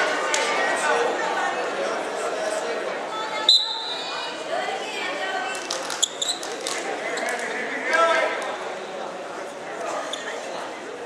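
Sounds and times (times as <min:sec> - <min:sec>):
shoes squeaking on a mat: 0:05.9 - 0:06.6, 0:10.0 - 0:10.5.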